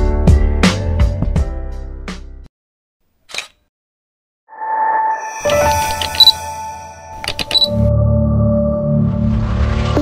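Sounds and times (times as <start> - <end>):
music: 0.0 - 2.5, 4.5 - 10.0.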